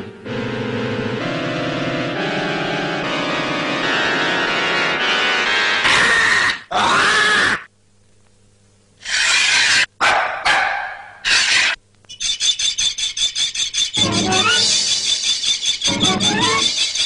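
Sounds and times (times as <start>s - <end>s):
dog-like barking and growling: 10.0s - 11.8s.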